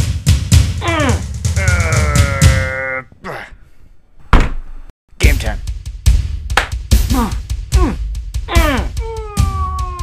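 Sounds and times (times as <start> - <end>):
heavy thunk: 4.3 - 4.8.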